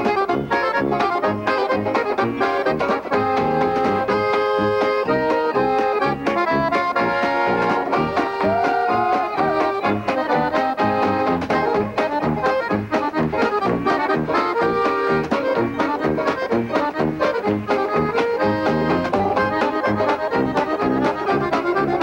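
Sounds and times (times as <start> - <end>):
fast accordion melody: 0.0 - 22.0
tuba bass: 0.0 - 22.0.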